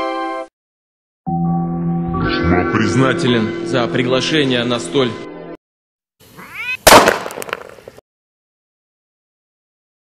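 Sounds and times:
cat meowing: 6.4 - 6.9
loud bang with crackles: 6.9 - 7.8.

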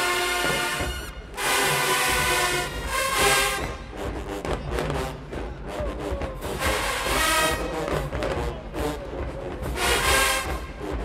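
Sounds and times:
drum strokes: 0.0 - 11.0.

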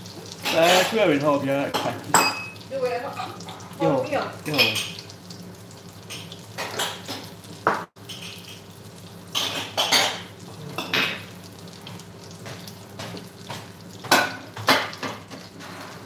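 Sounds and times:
meat sizzling in oil: 0.0 - 16.0
kitchenware clinking and clattering: 0.2 - 5.1, 6.1 - 8.7, 9.3 - 11.3, 12.4 - 16.0.

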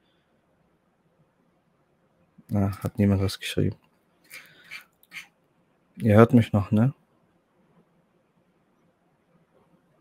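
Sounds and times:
man breathing into microphone: 4.3 - 4.9.

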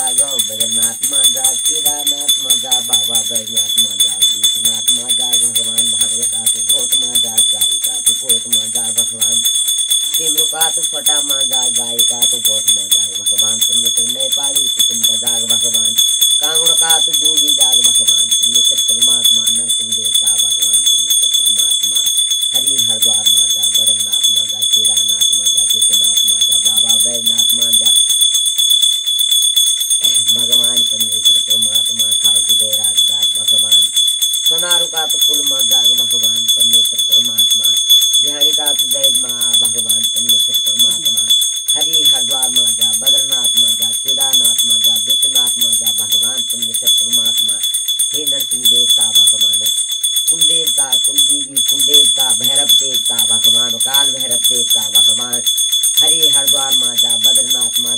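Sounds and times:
woman chanting: 0.0 - 4.2, 10.1 - 15.8, 16.4 - 18.2, 34.5 - 35.8, 38.2 - 39.9, 40.9 - 49.5, 50.3 - 57.9
small hand bell ringing: 0.0 - 57.9.

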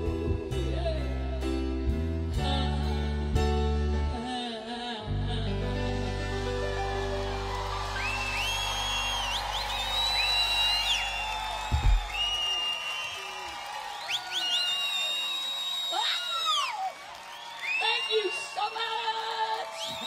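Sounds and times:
audience cheering and whistling: 6.6 - 20.0.

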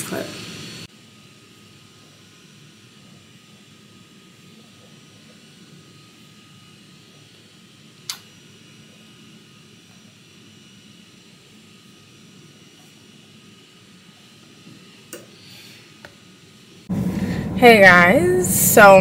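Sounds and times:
ventilation hum and hiss: 0.0 - 7.3, 14.7 - 19.0.

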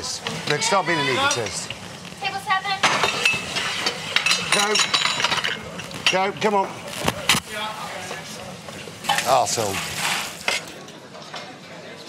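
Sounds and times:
cooking hiss: 0.0 - 10.6
dishes clinking: 2.8 - 6.6, 8.8 - 11.6.

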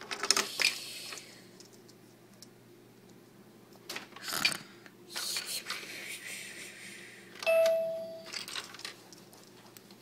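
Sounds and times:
electronic toy chime: 7.5 - 8.3.

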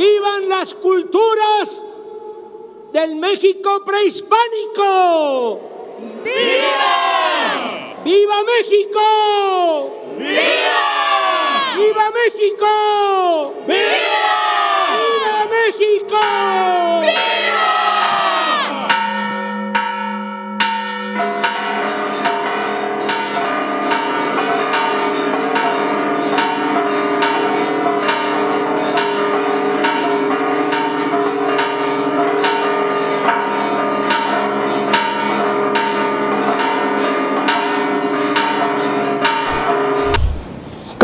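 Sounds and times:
crowd shouting: 5.6 - 8.1, 9.4 - 12.0, 13.0 - 19.0
church bells pealing: 15.3 - 40.1.

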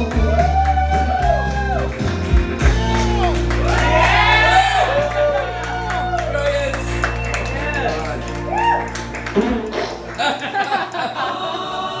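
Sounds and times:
karaoke backing track chord: 0.0 - 12.0
bar crowd chatter: 6.6 - 12.0.

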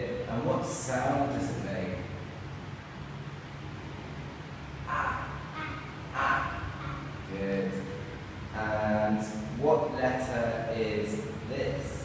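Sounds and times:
low room hum: 0.0 - 12.0
child saying a letter sound: 4.9 - 7.2.

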